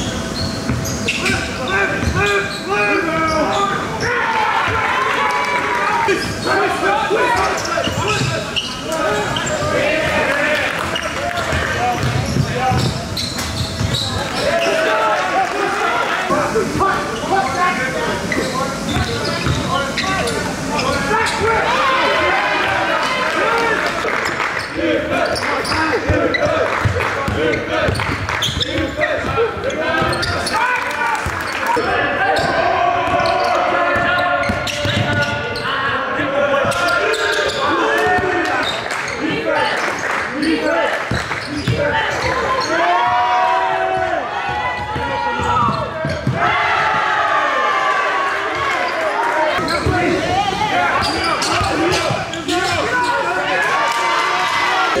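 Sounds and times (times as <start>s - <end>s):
players calling out: 0.0s - 55.0s
basketball bouncing on hardwood: 11.5s - 12.9s.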